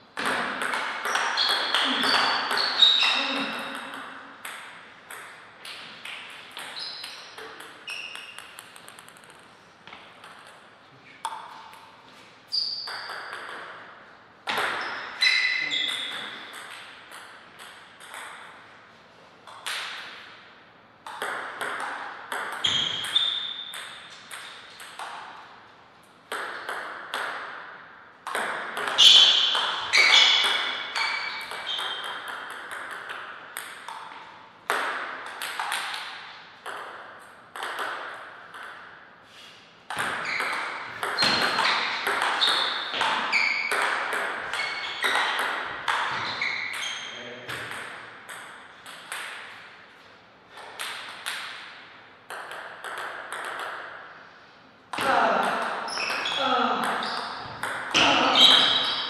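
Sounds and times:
table tennis ball clicking: 0:03.7 - 0:09.5, 0:30.4 - 0:38.8, 0:52.3 - 0:53.9.

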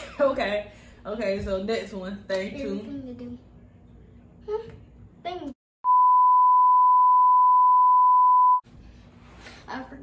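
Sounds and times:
censor bleep: 0:05.8 - 0:08.6.

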